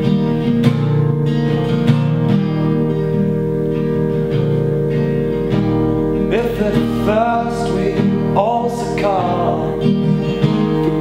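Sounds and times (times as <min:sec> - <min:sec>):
organ chords: 0:00.0 - 0:11.0
strummed acoustic guitar: 0:00.0 - 0:11.0
man singing: 0:06.3 - 0:11.0.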